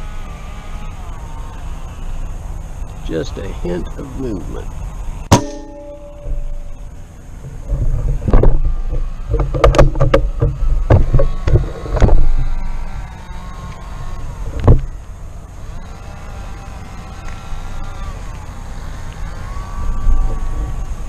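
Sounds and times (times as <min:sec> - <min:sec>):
low rumbling: 0:04.7 - 0:18.8
loud knocks: 0:05.3 - 0:06.8, 0:07.6 - 0:12.4, 0:14.5 - 0:14.9.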